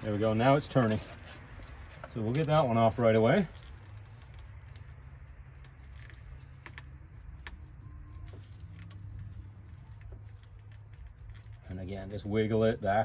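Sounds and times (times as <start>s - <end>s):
gloved hands twisting rubber hose: 0.0s - 12.3s.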